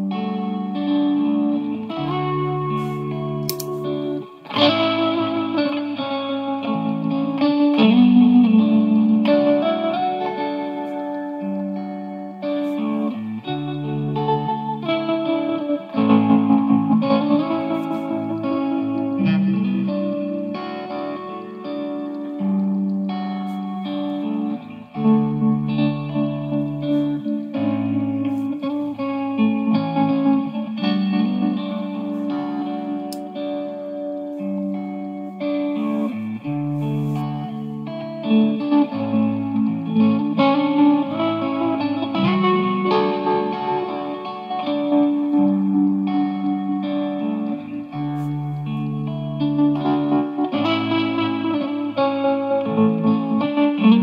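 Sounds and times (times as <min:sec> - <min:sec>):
overdriven electric guitar with tremolo: 0:00.0 - 0:54.0
rhythm guitar backing loop: 0:00.0 - 0:54.0.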